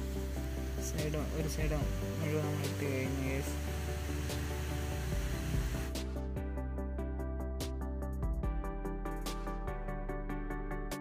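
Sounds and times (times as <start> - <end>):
background music with beat: 0.0 - 11.0.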